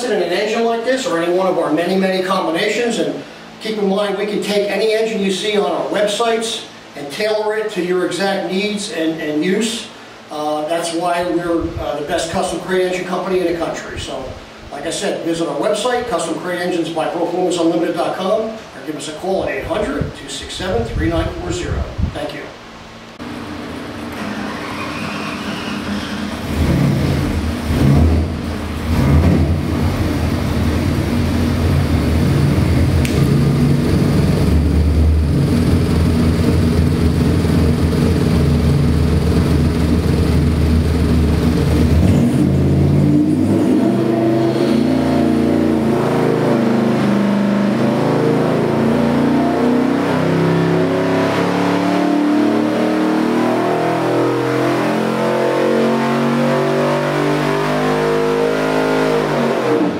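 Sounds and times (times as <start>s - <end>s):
engine full-load sweep rising pitch: 23.2s - 59.9s
engine idling and revving: 23.2s - 59.9s.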